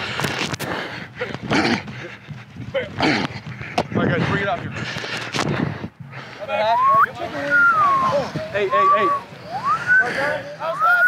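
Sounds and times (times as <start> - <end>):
players shouting: 6.4 - 11.0.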